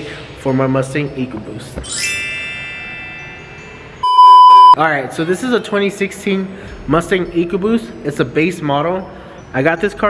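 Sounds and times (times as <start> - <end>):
bell-like chime: 1.9 - 4.8.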